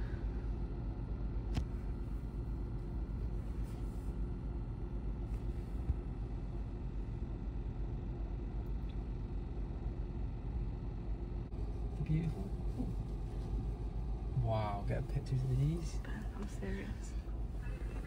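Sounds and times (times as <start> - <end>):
car engine running inside cabin: 0.0 - 18.0.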